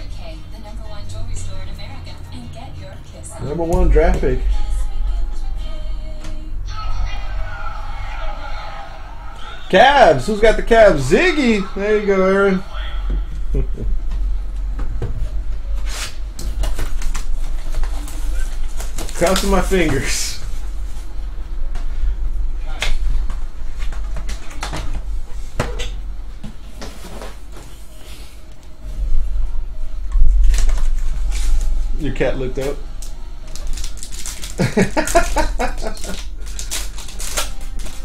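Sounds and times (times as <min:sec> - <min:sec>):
heavy low rumble: 0:00.0 - 0:09.3
steady low hum: 0:00.0 - 0:38.0.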